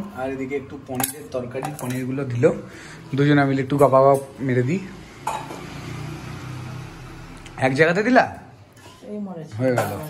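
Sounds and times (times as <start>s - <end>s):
cutlery and dishes clinking: 0.8s - 2.4s, 3.7s - 4.6s, 5.2s - 6.0s, 8.7s - 10.0s.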